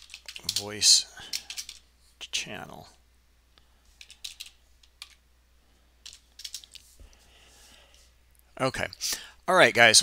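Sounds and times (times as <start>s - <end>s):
typing on computer keyboard: 0.0s - 0.7s, 1.3s - 1.8s, 4.0s - 5.2s, 6.0s - 6.8s.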